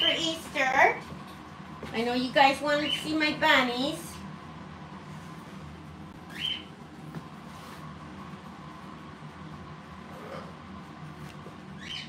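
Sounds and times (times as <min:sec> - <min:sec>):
faint household hum: 0:00.0 - 0:12.0
parrot chirps: 0:06.3 - 0:06.7, 0:11.8 - 0:12.0.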